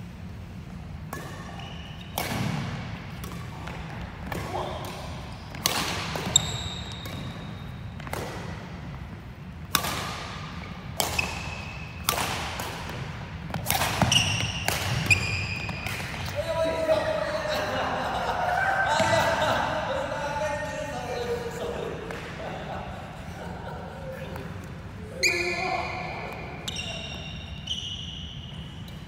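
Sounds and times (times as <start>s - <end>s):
rackets hitting shuttlecock: 1.0s - 16.4s
shoes squeaking on wooden floor: 14.0s - 15.8s.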